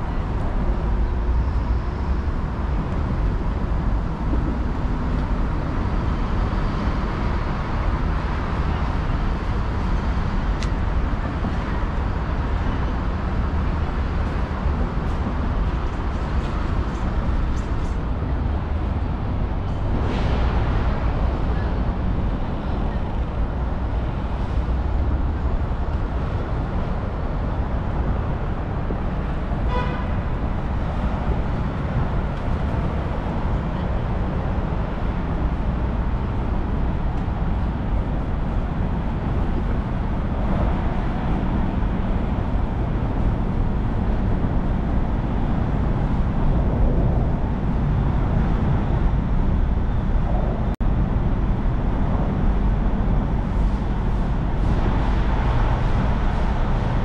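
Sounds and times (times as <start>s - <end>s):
traffic rumble: 0.0s - 57.0s.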